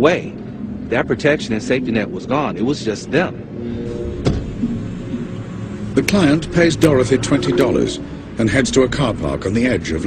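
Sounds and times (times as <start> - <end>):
car engine running: 2.9 - 10.0.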